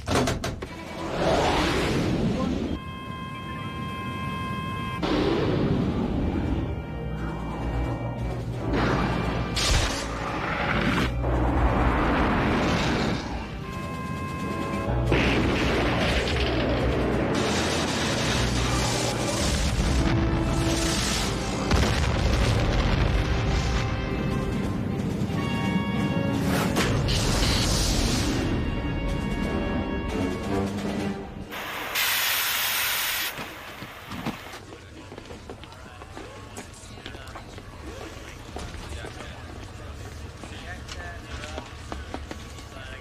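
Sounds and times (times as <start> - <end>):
music: 2.8 - 32.0
hissing gas venting: 31.5 - 34.5.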